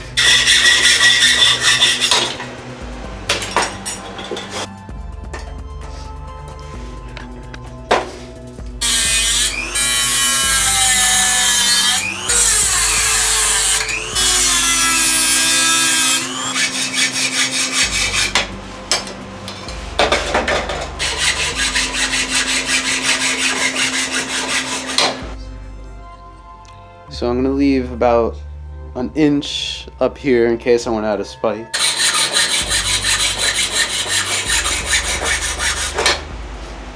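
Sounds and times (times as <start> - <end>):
background music: 0.0 - 36.9
hacksaw cutting metal: 0.1 - 2.6, 3.3 - 4.7, 8.8 - 25.4, 31.8 - 36.3.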